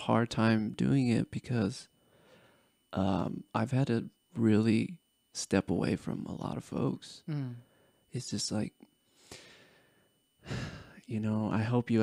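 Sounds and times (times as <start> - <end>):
man speaking: 0.0 - 1.9, 3.0 - 7.3, 8.1 - 8.8, 10.5 - 12.0
man sighing: 10.4 - 11.0.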